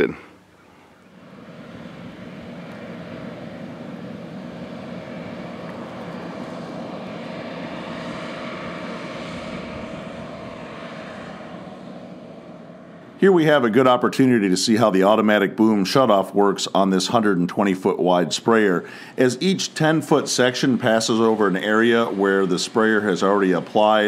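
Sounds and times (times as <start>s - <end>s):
sprayer engine drone: 0.0s - 24.0s.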